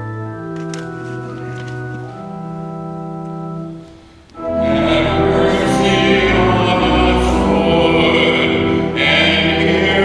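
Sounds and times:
organ: 0.0s - 10.0s
group singing a hymn: 4.4s - 10.0s.

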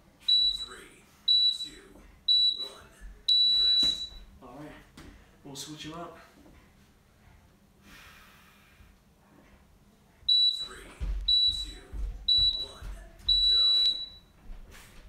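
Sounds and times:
electronic timer beeps: 0.2s - 4.2s, 10.3s - 14.3s.

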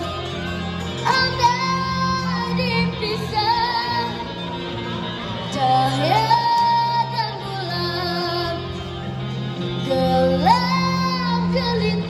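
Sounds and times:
electric guitar accompaniment: 0.0s - 12.0s
boy singing pop ballad: 1.0s - 4.2s, 9.8s - 12.0s.

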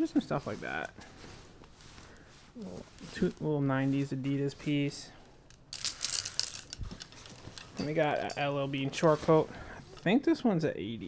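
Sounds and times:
hangers scraping along a rail: 0.0s - 10.2s
jacket fabric rustling: 0.0s - 11.0s.

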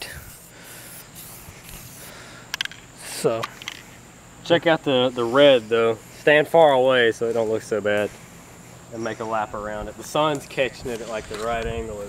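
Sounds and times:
spray can hissing: 0.0s - 2.1s.

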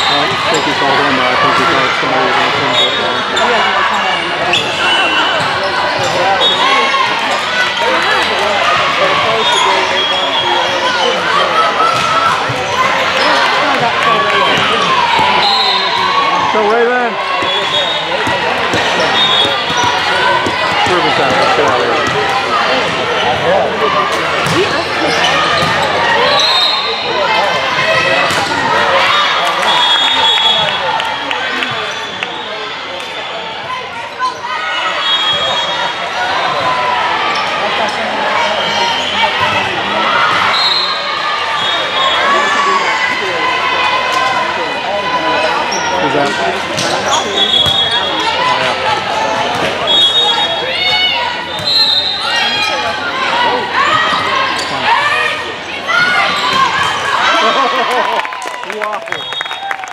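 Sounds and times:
voices chattering and calling out: 0.0s - 59.9s
sneakers squeaking on court: 17.4s - 23.5s, 24.4s - 26.6s.

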